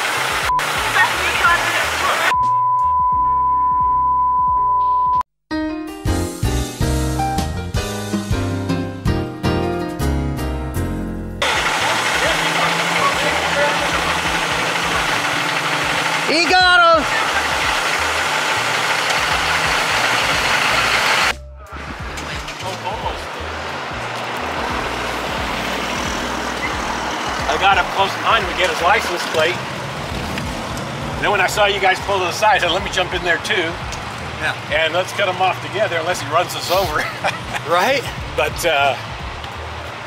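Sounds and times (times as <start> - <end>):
voices: 0.7 - 2.4, 11.4 - 18.4, 21.6 - 24.5, 26.5 - 29.6, 31.2 - 39.1
piano music: 5.5 - 29.0
trucks driving past: 10.9 - 40.0.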